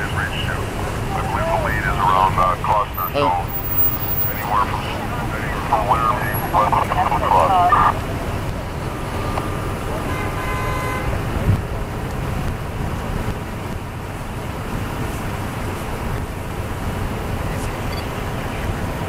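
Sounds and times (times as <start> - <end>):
indistinct voices talking: 0.0 - 10.2
idling vehicles and traffic: 0.0 - 19.0.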